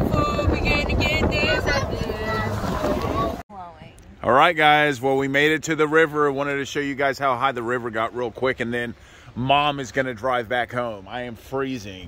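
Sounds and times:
wind rushing over microphone: 0.0 - 3.4.

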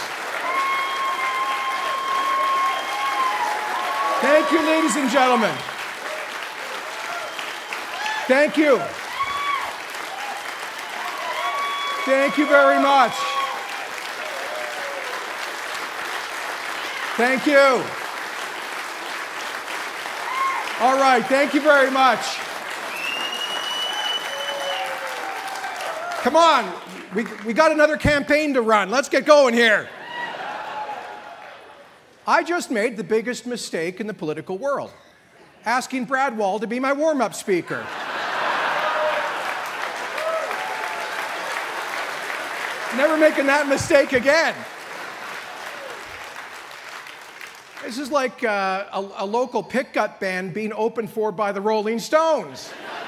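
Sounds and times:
crowd applauding: 0.0 - 28.6, 29.5 - 31.9, 37.7 - 48.7
man speaking: 4.2 - 5.7, 8.3 - 8.9, 12.0 - 13.3, 17.2 - 18.0, 20.8 - 22.5, 32.2 - 35.0, 42.9 - 44.7, 47.8 - 52.7.

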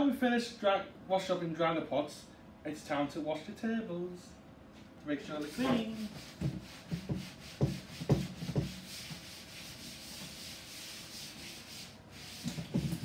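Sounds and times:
cloth rubbing on tabletop: 5.4 - 13.0.

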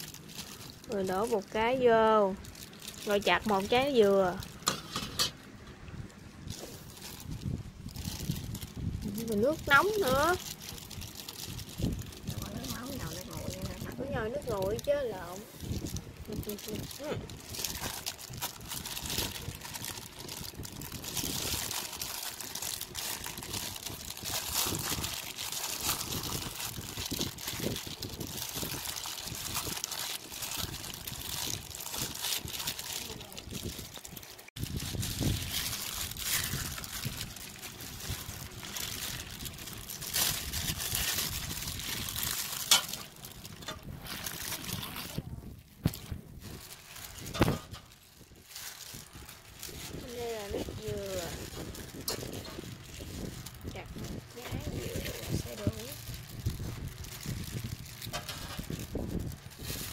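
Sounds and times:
plastic bag crinkling: 0.0 - 5.5, 6.4 - 59.9.

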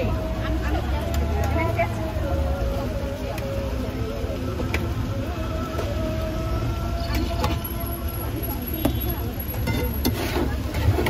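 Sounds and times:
faint background voices: 0.0 - 11.0
low rumble of street traffic: 0.0 - 11.0.

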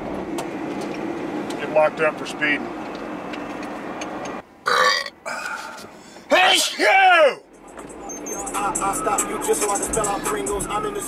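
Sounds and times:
car engine and road noise: 0.0 - 11.0
man burping loudly: 4.6 - 5.3.

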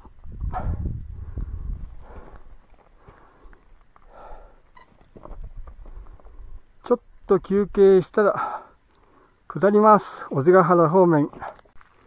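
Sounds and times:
wind noise on microphone: 0.0 - 2.6, 5.2 - 6.7
footsteps on gravel and stone: 4.9 - 6.6, 10.2 - 12.0.

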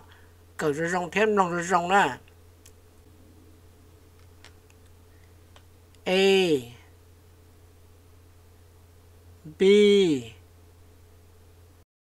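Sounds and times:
faint low hum: 0.0 - 11.8.

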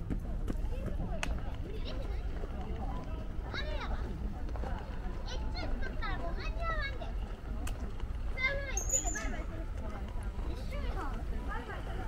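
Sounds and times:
footsteps on pavement: 0.0 - 8.6, 9.4 - 12.0
voices of passers-by: 0.0 - 12.0.

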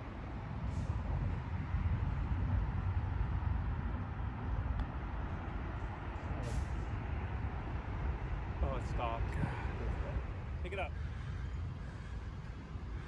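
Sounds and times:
low outdoor background rumble: 0.0 - 13.0.

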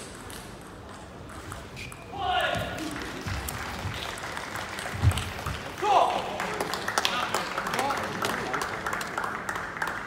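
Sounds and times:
applause: 2.8 - 10.0.

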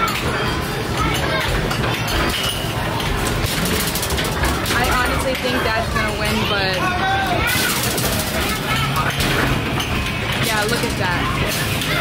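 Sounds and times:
arcade noise: 0.0 - 12.0.

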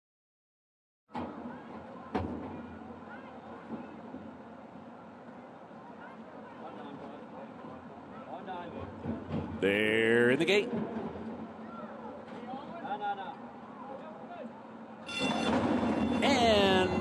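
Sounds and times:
distant crowd voices: 1.1 - 17.0.

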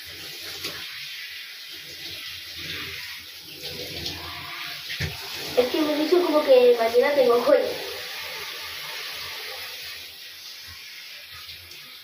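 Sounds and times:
water running into a bathtub: 0.0 - 12.0.

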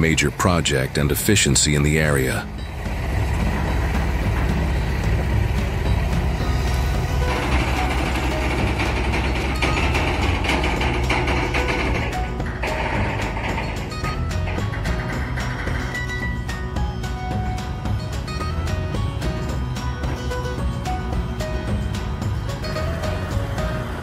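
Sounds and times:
background music: 0.0 - 24.0
truck diesel engine running: 0.0 - 24.0.

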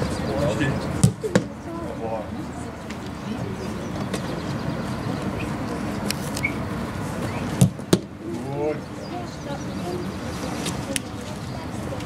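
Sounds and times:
spectators chatting: 0.0 - 12.0.

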